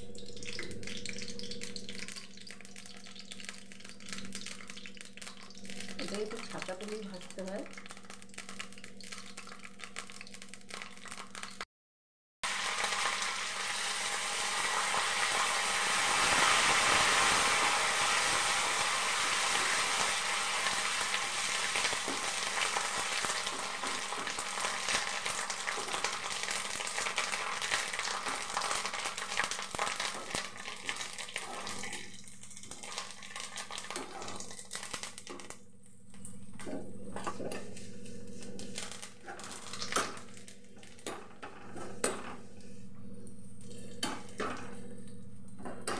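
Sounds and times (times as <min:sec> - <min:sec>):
leaves sizzling in hot oil: 0:00.0 - 0:11.6, 0:12.4 - 0:35.6, 0:37.8 - 0:40.6.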